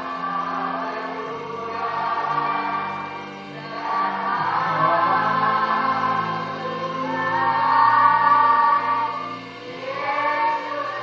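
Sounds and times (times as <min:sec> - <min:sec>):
voices singing gospel song: 0:00.0 - 0:11.0.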